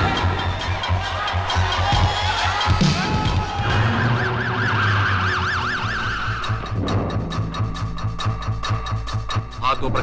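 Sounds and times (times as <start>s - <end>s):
fast ticking music beat: 0.0s - 4.9s, 5.7s - 10.0s
police siren yelping: 0.0s - 6.7s.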